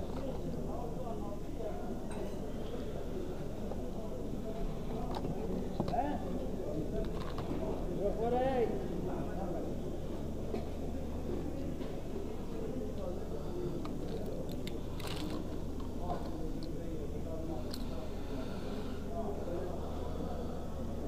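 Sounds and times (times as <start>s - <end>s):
distant people talking: 0.0s - 21.0s
market background hum: 0.0s - 21.0s.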